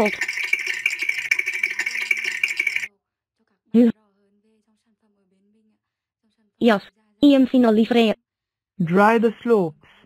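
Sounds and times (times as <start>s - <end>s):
steady rattling: 0.0s - 2.9s.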